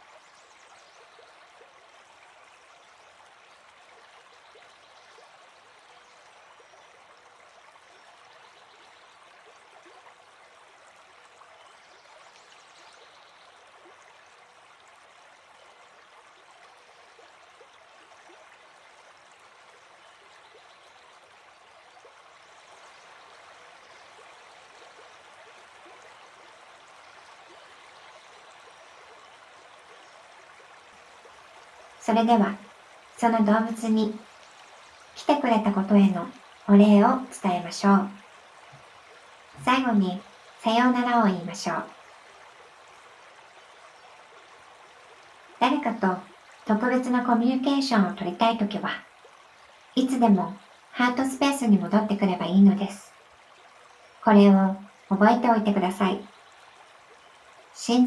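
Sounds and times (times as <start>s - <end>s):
flowing stream: 0.0s - 58.0s.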